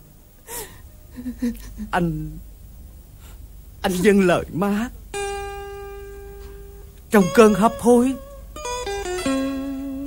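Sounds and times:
man speaking tearfully: 0:07.1 - 0:08.2.

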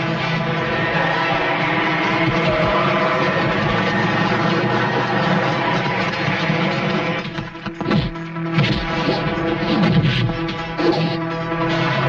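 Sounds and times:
motorcycle engines droning: 0:00.0 - 0:07.6.

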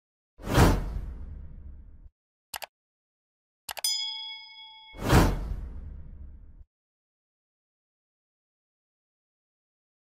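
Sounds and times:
whoosh sound effect: 0:04.9 - 0:06.1.

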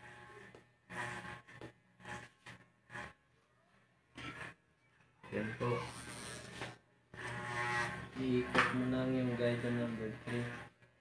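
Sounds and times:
electric hair clipper buzzing: 0:00.0 - 0:03.2, 0:05.8 - 0:10.7.

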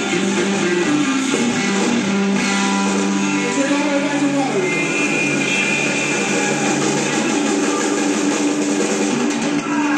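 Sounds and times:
drums with cymbals: 0:00.0 - 0:09.9
electric guitar: 0:00.0 - 0:09.9.

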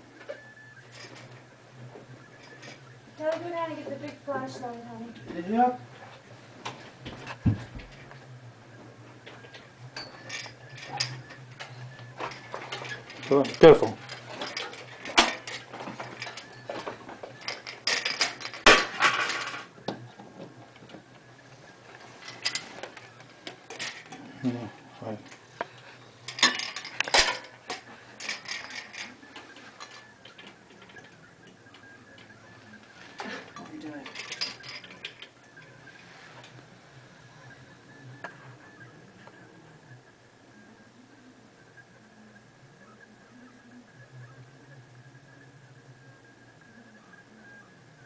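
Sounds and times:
low voices: 0:19.7 - 0:47.9.

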